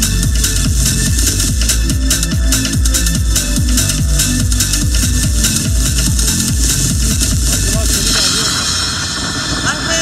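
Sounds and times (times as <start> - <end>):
stereo music: 0.0 - 10.0
person speaking: 7.3 - 8.6.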